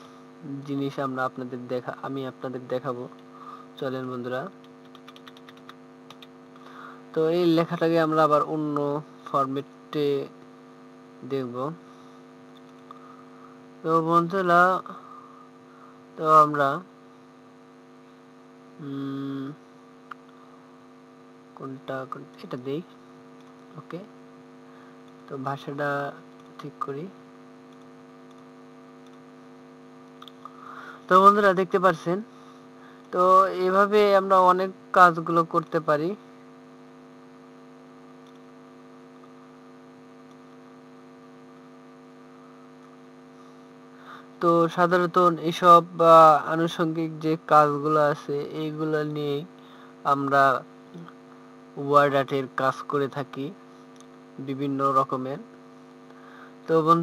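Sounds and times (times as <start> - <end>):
electrical mains hum: 0.0 - 57.0
man humming mmm: 18.8 - 19.6.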